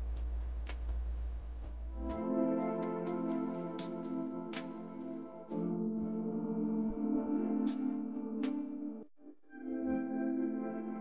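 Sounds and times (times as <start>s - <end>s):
soft ambient music: 1.6s - 11.0s.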